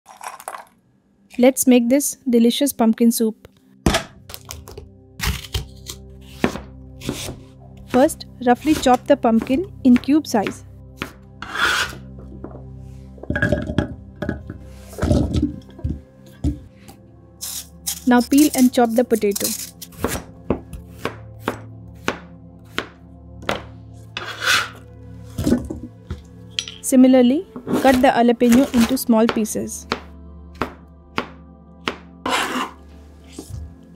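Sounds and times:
knife chopping pumpkin: 3.9s - 12.0s, 19.6s - 24.8s, 27.6s - 32.8s
knife scraping cutting board: 5.2s - 7.4s, 11.0s - 12.1s, 24.2s - 24.8s, 32.2s - 33.6s.

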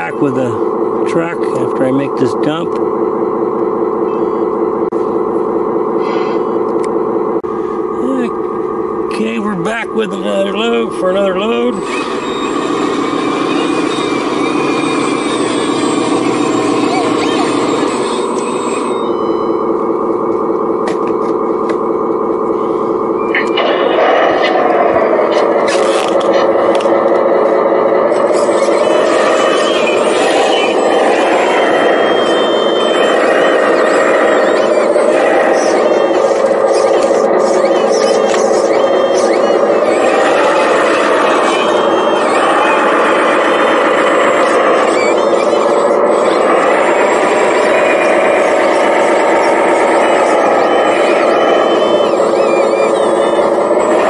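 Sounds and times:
whine of small electric motors: 0.0s - 54.0s.

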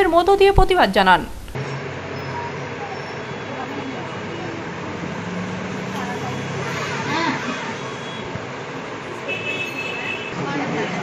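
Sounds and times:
traffic noise: 0.0s - 11.0s.

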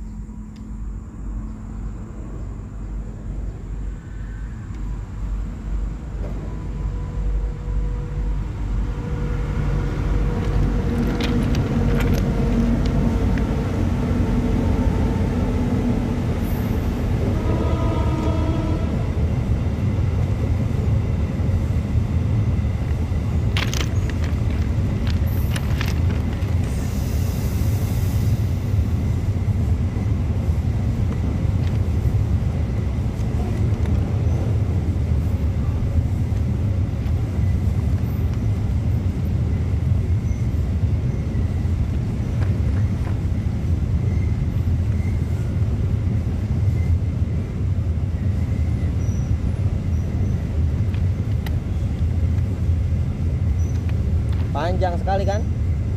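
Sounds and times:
freight train passing: 0.0s - 55.9s.

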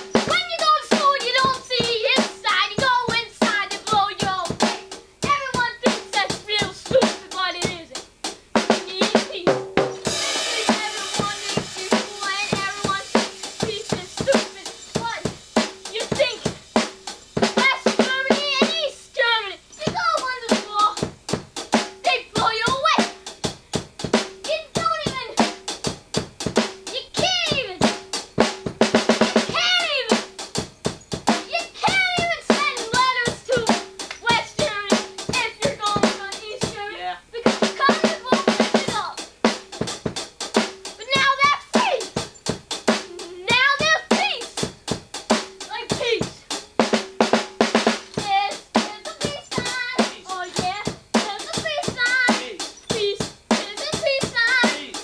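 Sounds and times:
drum kit beat: 0.0s - 55.0s
cymbal wash: 10.0s - 17.6s.

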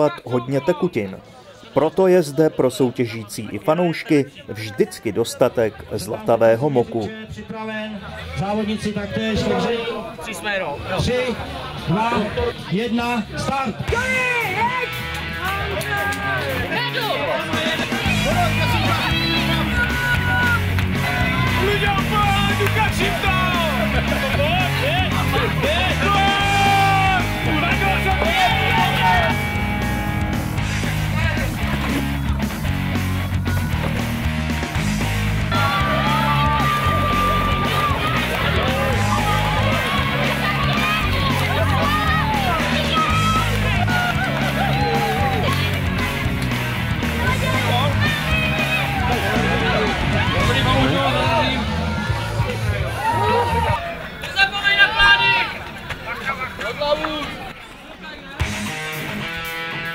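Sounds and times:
rock music with guitar: 14.4s - 51.9s, 58.4s - 59.9s.

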